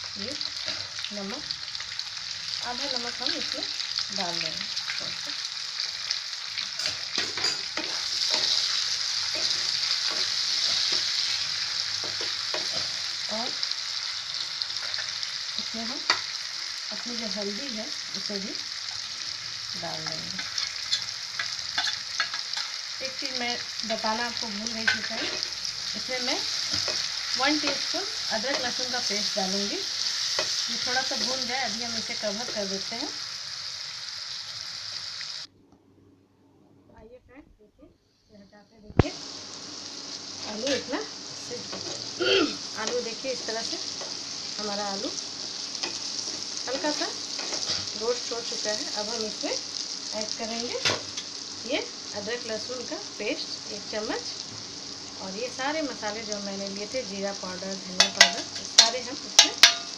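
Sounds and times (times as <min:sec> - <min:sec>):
potatoes sizzling in a frying pan: 0:00.0 - 0:35.5, 0:38.7 - 0:59.9
wooden spatula scraping a pan: 0:45.8 - 0:48.0.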